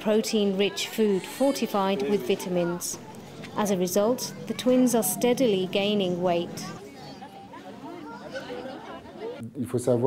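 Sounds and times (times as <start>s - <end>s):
faint background chatter: 0.0s - 10.0s.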